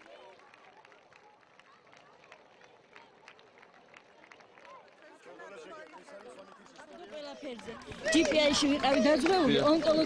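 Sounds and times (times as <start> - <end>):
faint crowd murmur: 0.0 - 10.0.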